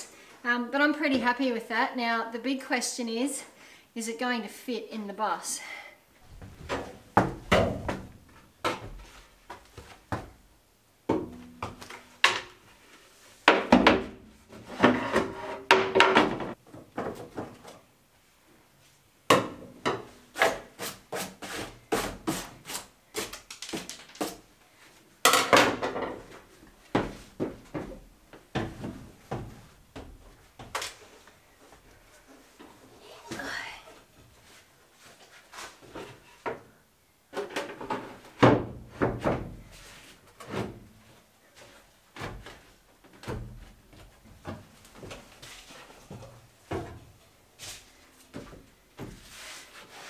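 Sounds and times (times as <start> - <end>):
wooden knocks and thumps: 6.3 - 10.4, 13.4 - 17.7
plywood scraping: 14.5 - 15.9.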